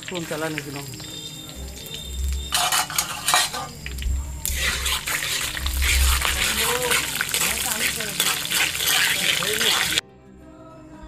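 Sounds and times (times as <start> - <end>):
low rumble: 0.0 - 8.1
spices sizzling in hot oil: 0.0 - 10.0
metal spatula scraping pan: 1.7 - 10.0.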